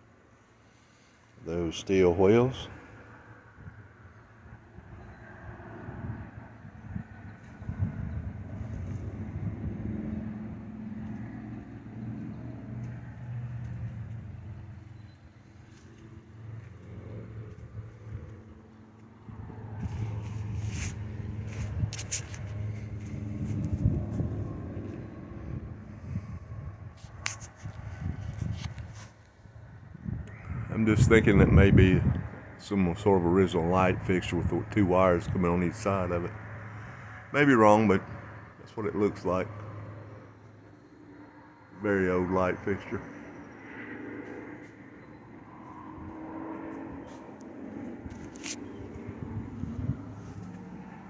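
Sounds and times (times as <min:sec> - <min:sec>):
vehicle engine rumbling: 0:00.0 - 0:51.0.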